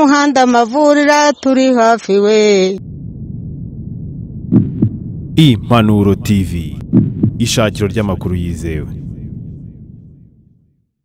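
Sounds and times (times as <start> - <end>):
deep thuds: 2.8 - 7.9
low rumbling drone: 2.8 - 10.9.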